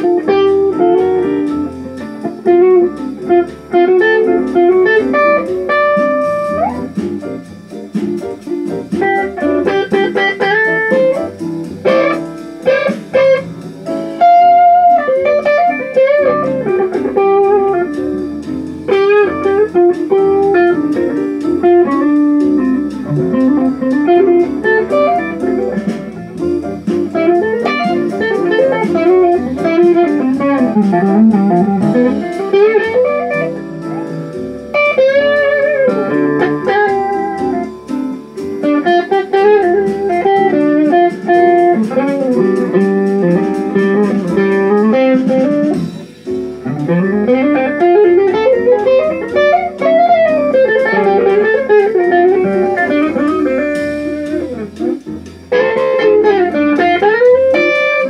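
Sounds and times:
electric guitar lead with bent notes: 0:00.0 - 0:58.0
lower guitar part: 0:00.0 - 0:58.0.

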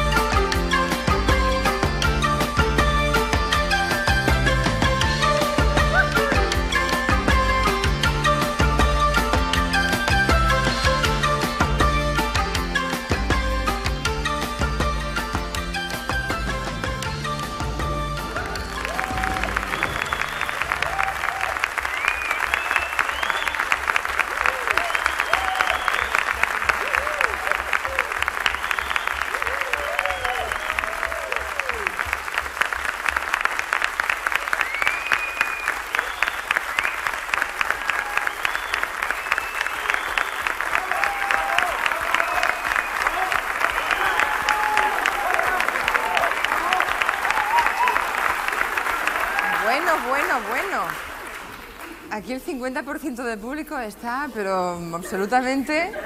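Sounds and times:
audience applauding: 0:00.0 - 0:53.6
audience shouting and whooping: 0:05.4 - 0:06.7, 0:18.3 - 0:32.5, 0:34.2 - 0:51.0.

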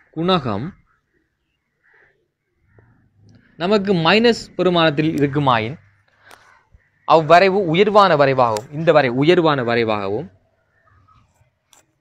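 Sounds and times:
man talking: 0:00.2 - 0:00.8, 0:03.6 - 0:05.9, 0:07.1 - 0:10.4.

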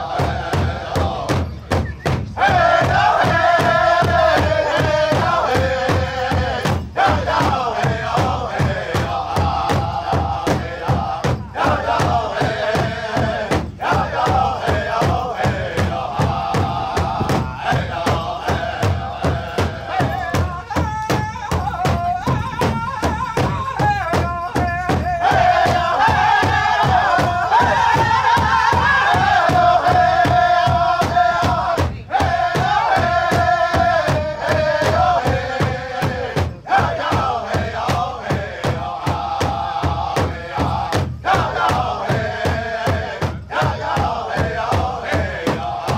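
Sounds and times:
high-pitched unison chanting: 0:00.0 - 0:45.9
large drum beaten with sticks: 0:00.0 - 0:45.9.

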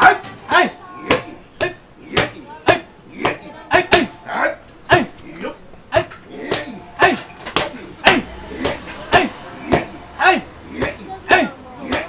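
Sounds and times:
people shouting calls: 0:00.0 - 0:12.0.

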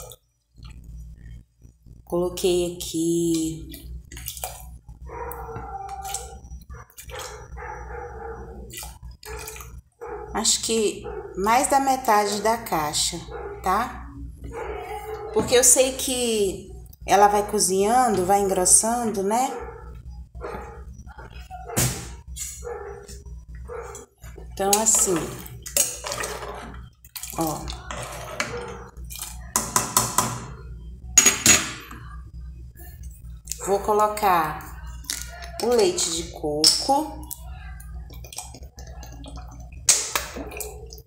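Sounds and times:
steady low hum: 0:00.0 - 0:41.0
dog barking: 0:05.0 - 0:10.4, 0:11.0 - 0:11.4, 0:13.3 - 0:13.8, 0:14.5 - 0:15.5, 0:19.5 - 0:20.9, 0:22.6 - 0:24.1, 0:28.4 - 0:28.9.

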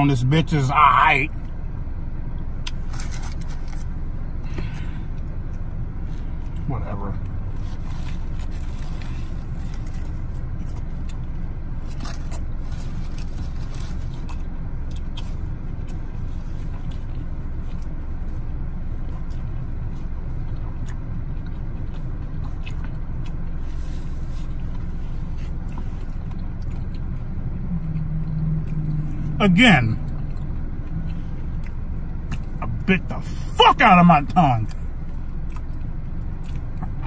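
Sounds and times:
car idling rumble: 0:00.0 - 0:37.0
person chewing: 0:04.5 - 0:32.9, 0:34.3 - 0:37.0.

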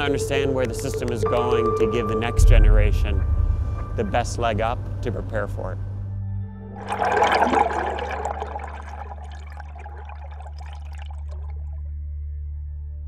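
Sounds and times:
steady low drone: 0:00.0 - 0:09.4
rushing splashing water: 0:06.8 - 0:11.6.

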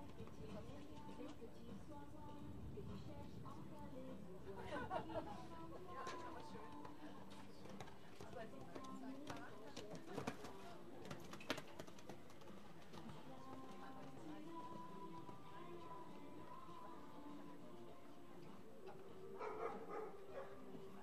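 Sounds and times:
background music: 0:00.0 - 0:21.0
indistinct background voices: 0:00.0 - 0:21.0.

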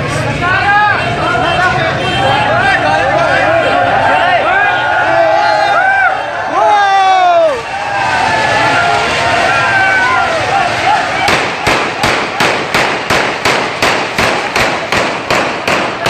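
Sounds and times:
crowd shouting: 0:00.3 - 0:13.5
firecrackers banging: 0:07.4 - 0:16.0.

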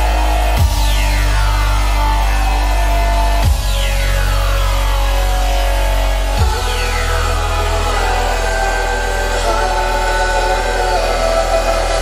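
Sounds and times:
deep bass note: 0:00.0 - 0:12.0.

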